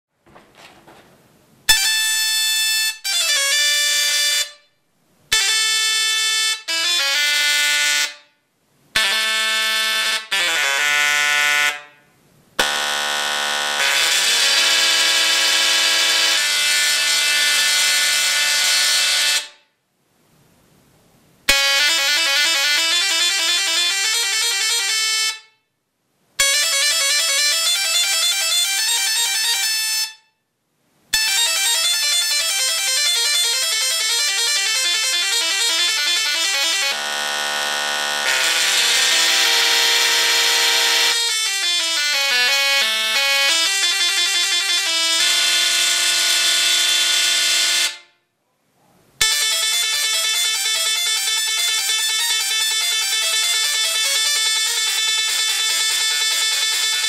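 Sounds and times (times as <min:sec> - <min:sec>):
tesla coil playing buzzy music: 0:09.0 - 0:11.8, 0:12.6 - 0:19.6, 0:21.5 - 0:25.3, 0:31.2 - 0:48.0.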